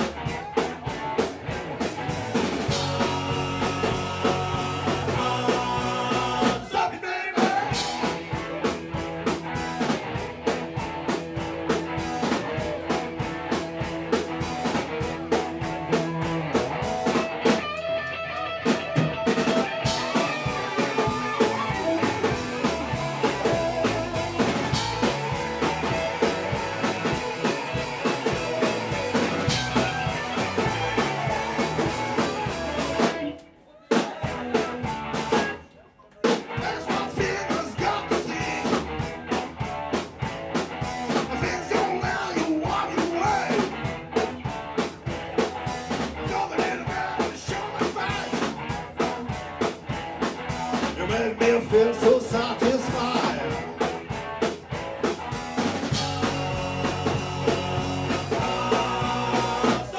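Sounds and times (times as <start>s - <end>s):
bass guitar: 0.0s - 33.5s, 34.1s - 59.9s
electric guitars: 0.0s - 33.5s, 34.2s - 35.6s, 36.2s - 59.9s
drum kit: 0.0s - 59.9s.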